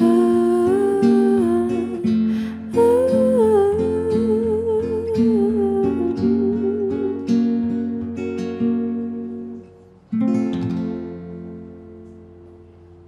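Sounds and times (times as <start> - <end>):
woman singing: 0.0 - 7.9
plucked acoustic guitar: 0.0 - 13.0.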